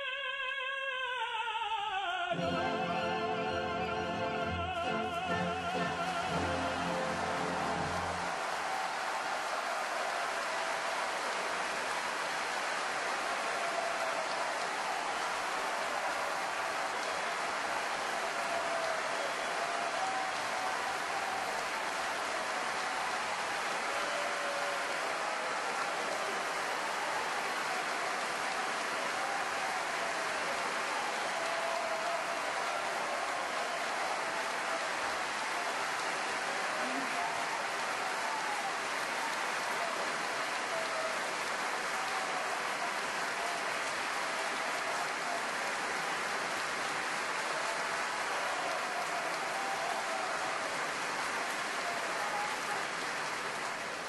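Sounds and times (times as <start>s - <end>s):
audience applauding: 2.3s - 54.0s
voices cheering: 2.3s - 54.0s.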